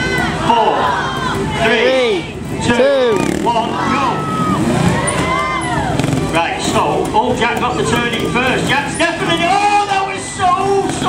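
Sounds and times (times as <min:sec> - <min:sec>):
crowd voices: 0:00.0 - 0:11.0
motorcycle engines revving: 0:00.0 - 0:11.0
announcer speaking: 0:06.4 - 0:11.0.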